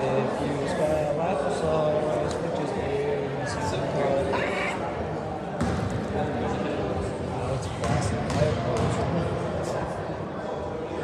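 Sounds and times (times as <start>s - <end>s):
people talking: 0.0s - 11.0s
basketball bouncing on gym floor: 7.8s - 9.1s.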